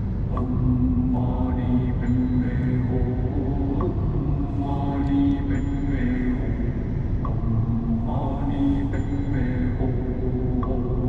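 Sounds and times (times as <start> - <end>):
chant-like vocal music: 0.0 - 11.0.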